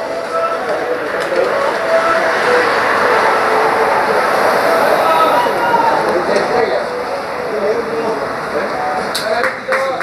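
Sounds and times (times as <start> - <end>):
faint distant voices: 0.0 - 10.0
outdoor background noise: 0.0 - 10.0.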